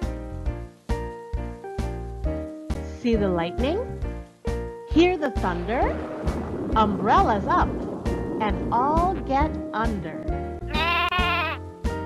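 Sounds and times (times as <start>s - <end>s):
light background music: 0.0s - 12.0s
sheep bleating: 10.7s - 11.7s.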